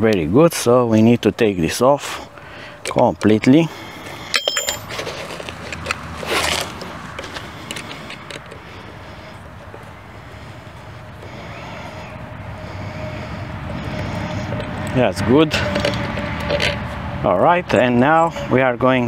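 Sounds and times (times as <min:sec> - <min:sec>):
steady background noise: 0:00.0 - 0:19.0
metal clinks of spanner and nut: 0:04.3 - 0:06.0.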